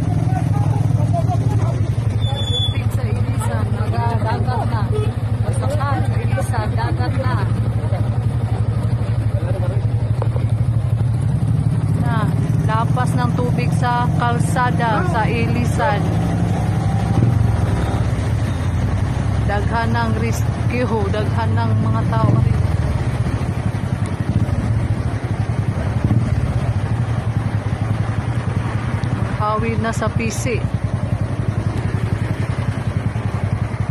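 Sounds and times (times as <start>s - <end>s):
engine running steadily: 0.0s - 33.9s.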